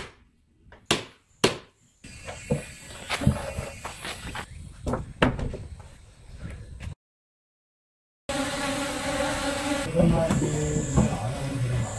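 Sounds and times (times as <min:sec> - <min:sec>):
honeybees buzzing: 0:08.3 - 0:11.9.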